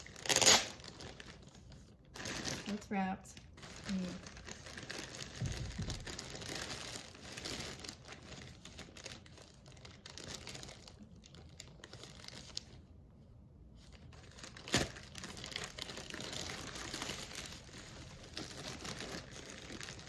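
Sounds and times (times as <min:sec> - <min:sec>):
packaging crinkling and tearing: 0:00.0 - 0:12.9, 0:13.8 - 0:20.0.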